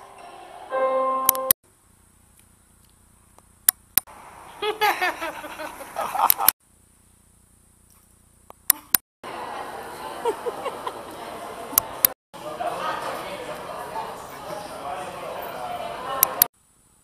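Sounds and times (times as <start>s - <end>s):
woman laughing: 4.6s - 6.5s, 10.2s - 11.2s.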